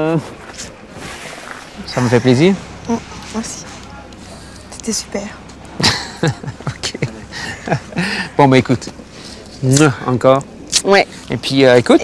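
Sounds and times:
low background noise: 0.0s - 12.0s
man speaking: 1.8s - 2.7s, 6.3s - 10.4s.

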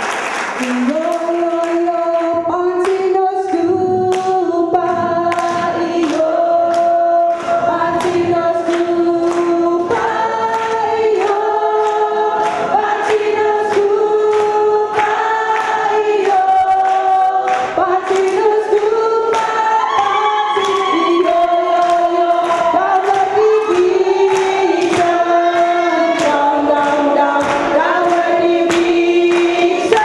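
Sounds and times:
group singing in chorus: 0.0s - 30.0s
sharp hand claps: 0.0s - 30.0s.

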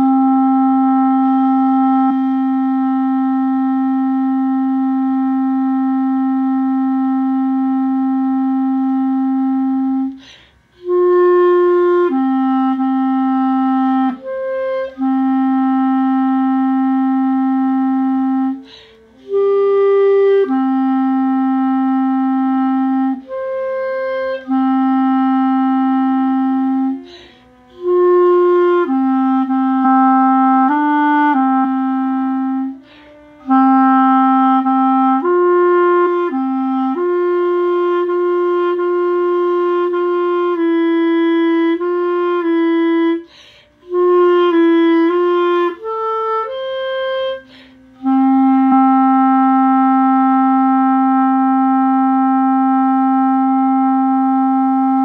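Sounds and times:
solo clarinet melody: 0.0s - 55.0s
player breathing in: 10.1s - 10.7s, 18.6s - 19.2s, 27.0s - 27.6s, 43.2s - 43.8s, 47.4s - 48.0s.

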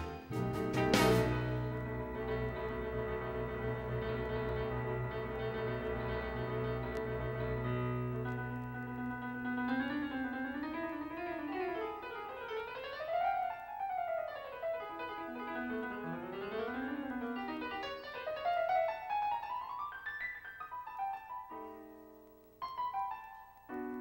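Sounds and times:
fast piano runs: 0.0s - 13.8s.

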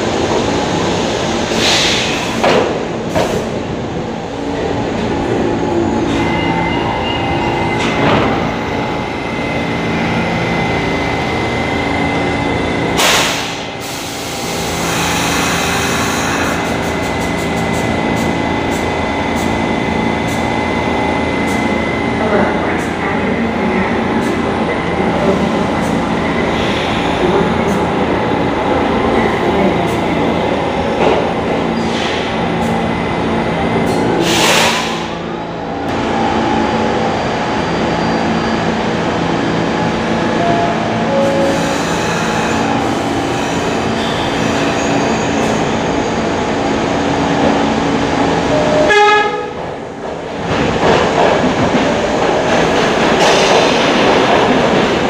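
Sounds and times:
subway train braking to a stop: 0.0s - 55.0s.

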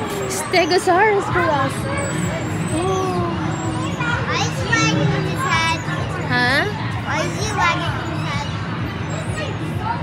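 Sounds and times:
hall chatter: 0.0s - 10.0s.

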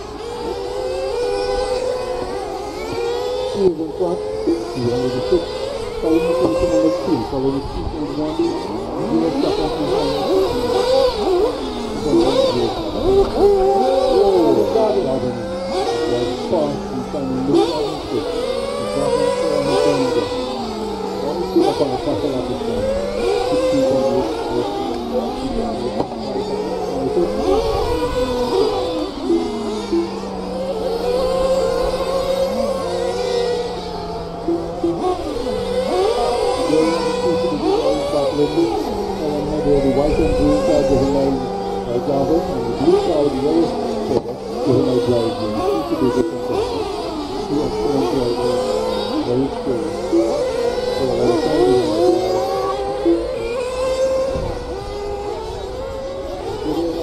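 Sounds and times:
rc car motors whining: 0.0s - 57.0s.

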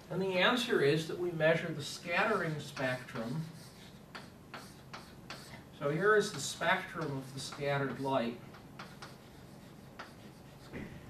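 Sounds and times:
chalk ticking and scratching: 1.8s - 10.8s.

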